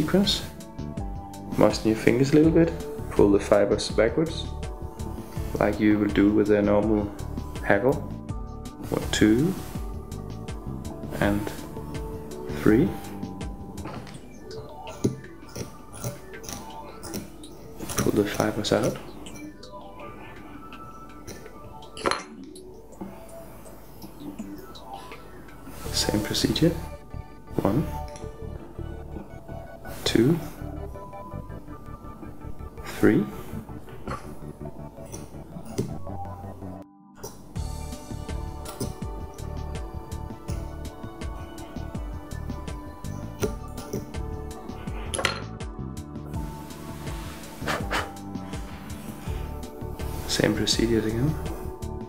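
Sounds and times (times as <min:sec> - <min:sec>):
faint background music: 0:00.0 - 0:52.0.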